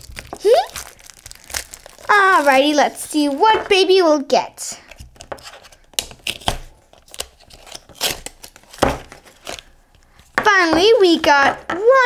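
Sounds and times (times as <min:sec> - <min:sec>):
wrapping being torn and crinkled: 0:00.0 - 0:03.6, 0:04.9 - 0:10.3.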